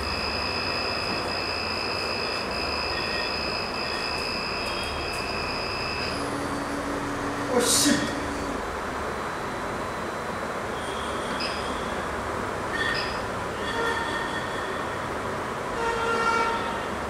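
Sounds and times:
stepper motor whines: 0.0 - 12.0
printer fan hiss: 0.0 - 15.8.

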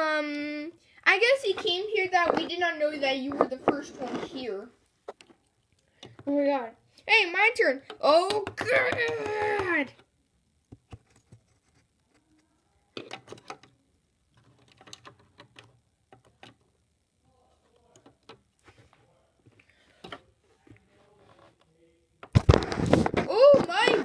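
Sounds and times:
child's voice: 0.0 - 4.8, 6.2 - 10.0, 23.2 - 24.0
plastic toys clicking and tapping: 1.5 - 4.4, 7.8 - 10.1, 13.0 - 16.7.

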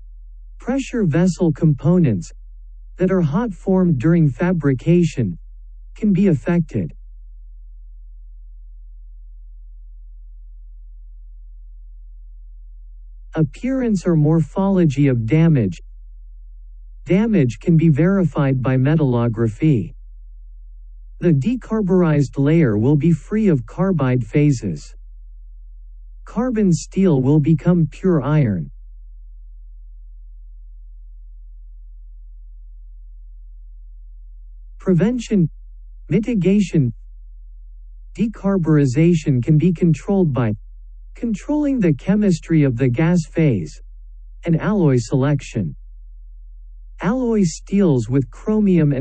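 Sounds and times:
deep low-pitched hum: 0.0 - 49.0.

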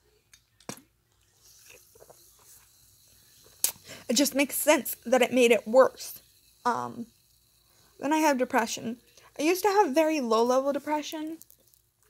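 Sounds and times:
faint hiss: 1.2 - 12.0.

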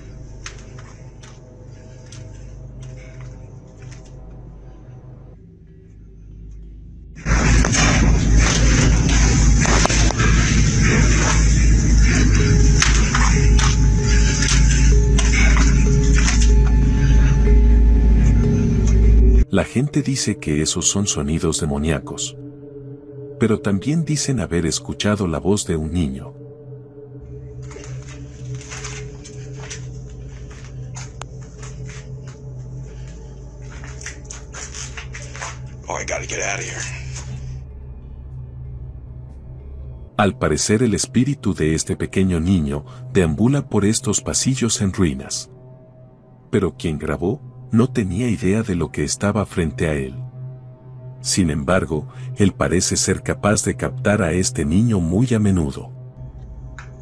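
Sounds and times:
distorted low rumble with crackles: 0.0 - 19.5, 26.9 - 46.4, 53.8 - 57.0
steady low hum: 0.0 - 57.0.

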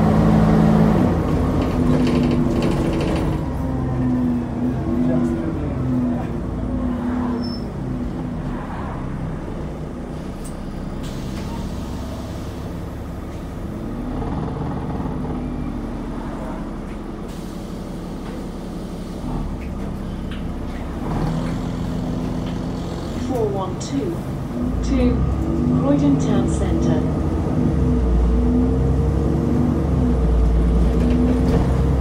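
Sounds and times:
bus engine droning: 0.0 - 32.0.

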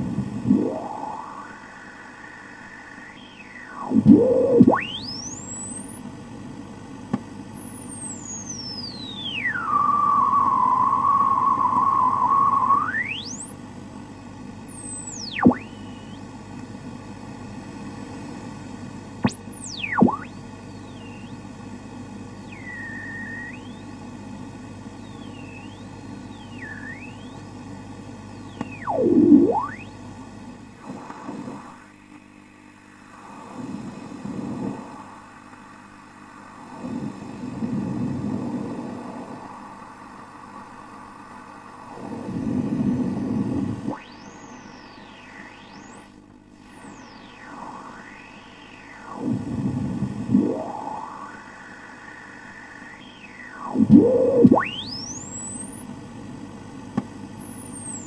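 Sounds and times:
interference whistles gliding in pitch: 0.0 - 6.3, 7.1 - 13.7, 14.6 - 16.3, 19.2 - 30.0, 43.2 - 56.2, 56.9 - 58.0
radio static hiss and hum: 0.0 - 58.0.

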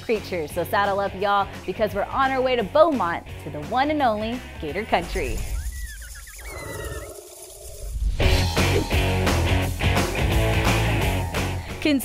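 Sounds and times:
high-pitched wavering animal call: 5.5 - 8.0
low animal roar: 6.3 - 8.0.

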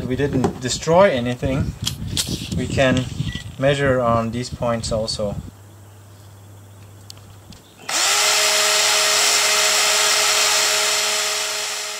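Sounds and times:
cordless drill whining: 7.9 - 11.9.

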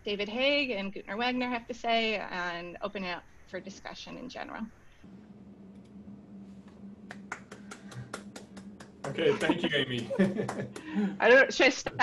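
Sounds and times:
steady low hum: 0.0 - 12.0
person clapping quickly: 7.1 - 11.1.

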